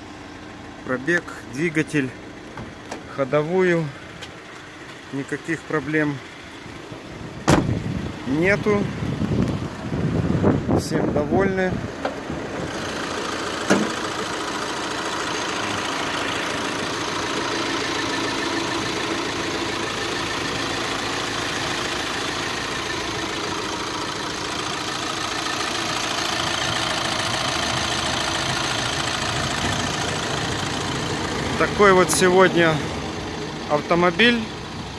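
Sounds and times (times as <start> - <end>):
diesel engine idling: 0.0 - 34.9.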